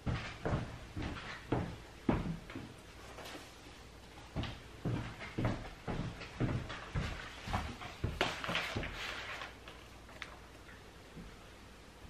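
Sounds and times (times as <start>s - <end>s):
paper rustling: 7.2s - 10.6s.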